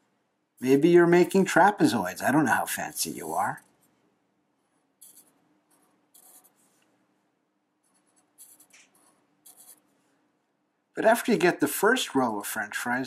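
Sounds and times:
marker squeaking on paper: 5.0s - 5.4s.

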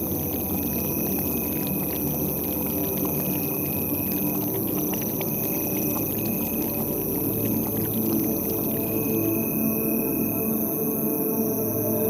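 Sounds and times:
low droning tones: 4.0s - 12.0s.

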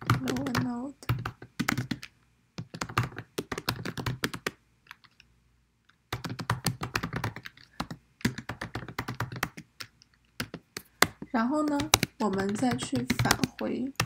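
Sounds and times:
typing on computer keyboard: 0.0s - 5.2s, 6.1s - 14.0s.

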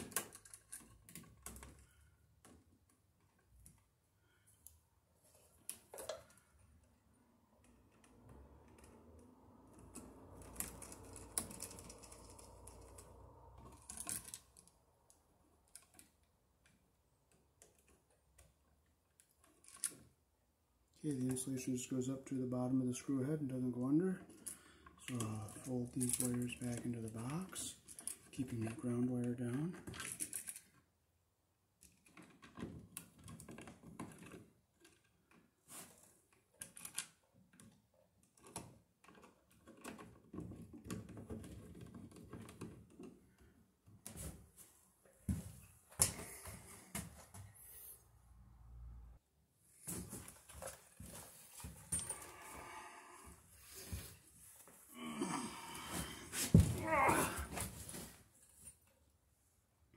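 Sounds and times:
cable rustling and clicking: 0.0s - 3.9s, 4.5s - 20.1s, 23.5s - 30.8s, 31.8s - 44.4s.

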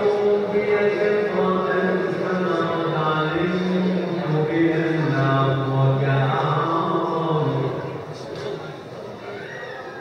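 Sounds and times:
man chanting religious recitation: 0.0s - 8.0s.

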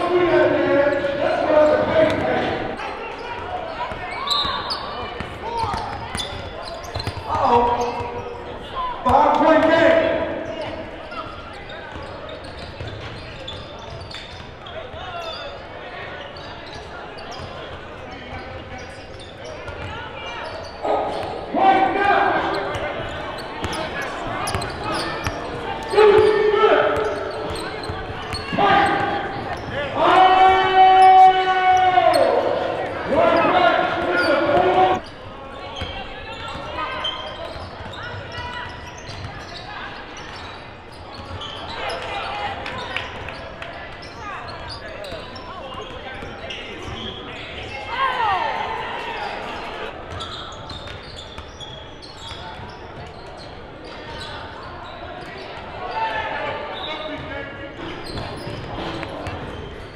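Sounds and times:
spectators' voices: 0.0s - 59.9s.

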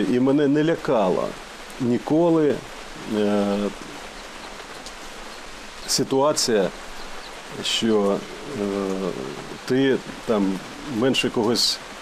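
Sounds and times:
man's voice: 0.0s - 3.8s, 5.9s - 6.7s, 7.5s - 11.8s
outdoor background hiss: 0.0s - 12.0s.

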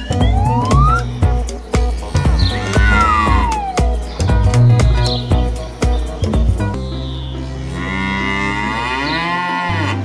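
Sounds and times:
backing music: 0.0s - 10.0s
cow mooing: 7.7s - 10.0s.

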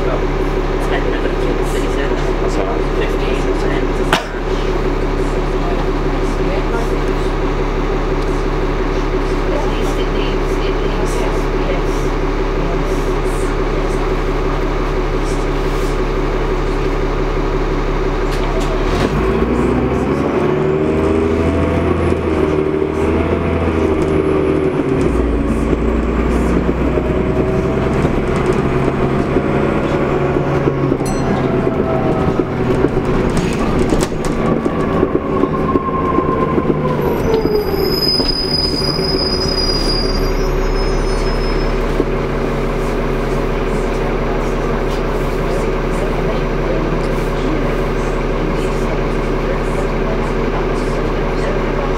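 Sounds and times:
bus diesel engine running: 0.0s - 51.9s
transmission whine: 16.5s - 42.9s
high-pitched brake squeal: 35.3s - 42.0s.

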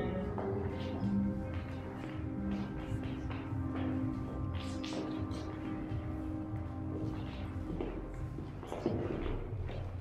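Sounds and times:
footsteps on hardwood floor: 0.0s - 10.0s.

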